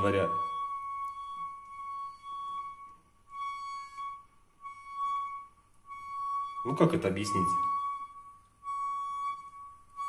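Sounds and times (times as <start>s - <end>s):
water pipe whistling: 0.0s - 10.0s.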